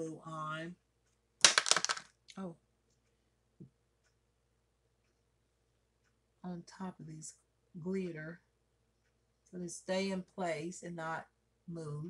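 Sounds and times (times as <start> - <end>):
small hard objects clattering: 1.4 - 2.1.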